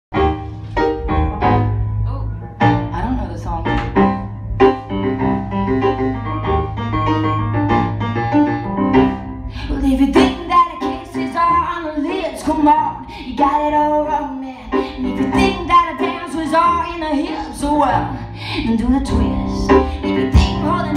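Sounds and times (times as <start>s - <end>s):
bass line: 0.1s - 14.0s, 15.1s - 20.9s
keyboard: 0.1s - 20.9s
drum hits: 0.7s - 6.1s.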